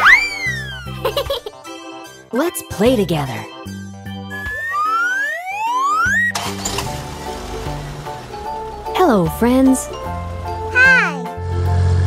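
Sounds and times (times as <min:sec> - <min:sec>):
rising whistle-like glide: 0:00.0 - 0:01.0, 0:04.3 - 0:06.3
light background music: 0:00.0 - 0:12.0.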